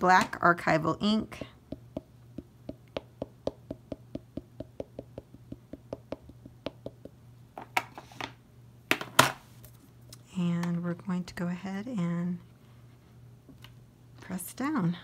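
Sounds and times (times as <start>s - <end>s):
woman's voice: 0.0s - 1.6s, 10.2s - 12.4s, 14.2s - 15.0s
ink pad tapping on stamp: 1.4s - 7.8s
plastic lid knocking: 1.7s - 7.9s.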